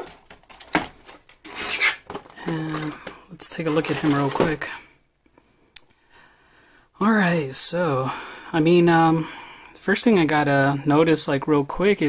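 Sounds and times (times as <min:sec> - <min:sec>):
plastic packaging tray scraping: 0:00.0 - 0:04.8.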